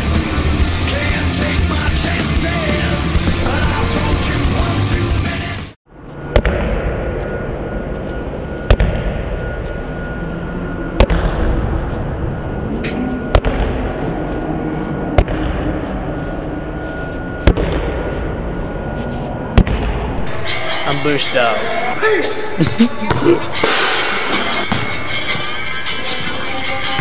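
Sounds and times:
basketball bouncing on gym floor: 23.0 - 23.8, 24.6 - 25.0.

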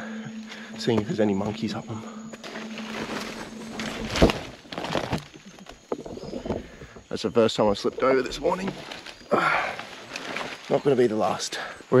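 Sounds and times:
footsteps rustling leaves: 0.4 - 5.9, 8.2 - 11.4.

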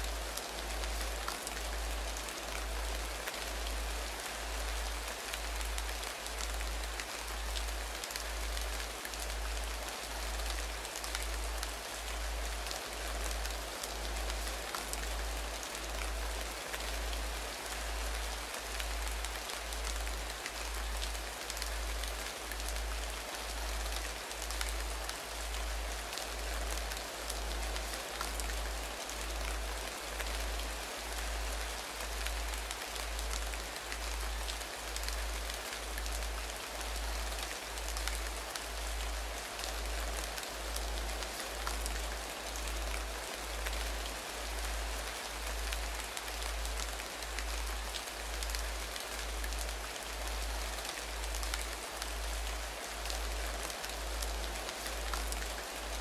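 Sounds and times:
rain-like hiss: 0.0 - 56.0.

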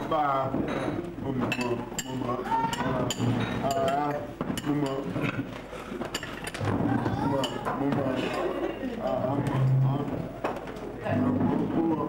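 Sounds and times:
cups glasses and cutlery clinking: 0.0 - 6.6
people chatting: 6.6 - 10.3, 11.0 - 12.0.

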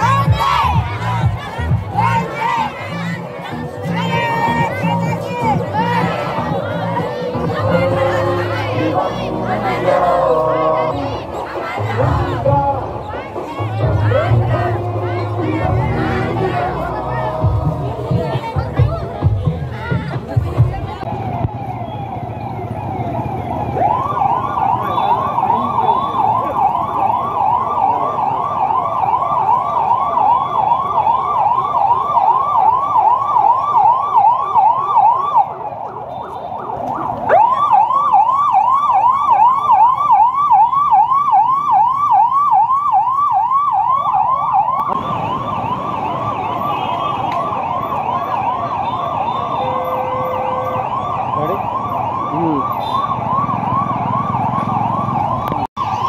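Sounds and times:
police siren yelping: 0.0 - 19.4, 20.6 - 56.0.

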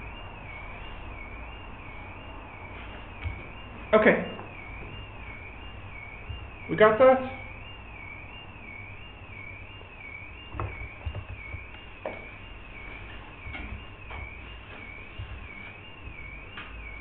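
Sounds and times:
wobbling high whine: 0.0 - 17.0.

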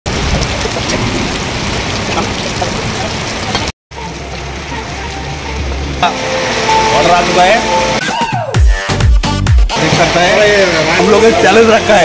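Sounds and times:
heavy rain falling: 0.1 - 8.0, 9.7 - 12.0.

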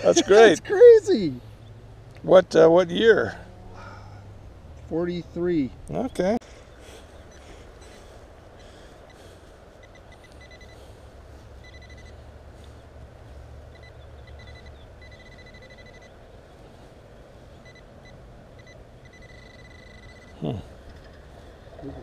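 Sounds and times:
metal detector beeping: 9.1 - 11.0, 11.6 - 12.8, 13.7 - 16.2, 17.5 - 21.4.

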